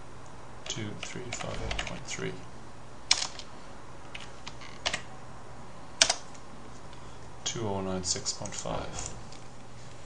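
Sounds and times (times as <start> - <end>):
faint steady hum: 0.0 - 10.0
computer keyboard key clicks: 6.0 - 6.4.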